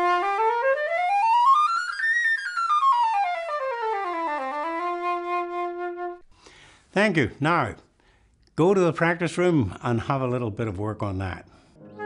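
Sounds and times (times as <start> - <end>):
concert flute playing a scale: 0.0 - 6.2, 11.8 - 12.0.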